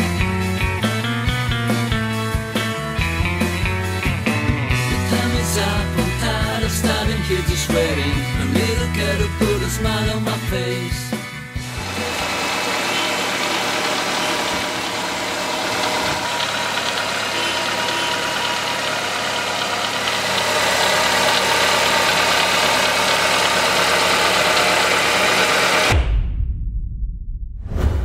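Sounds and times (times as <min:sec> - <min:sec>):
car engine idling: 0:11.6 - 0:25.9.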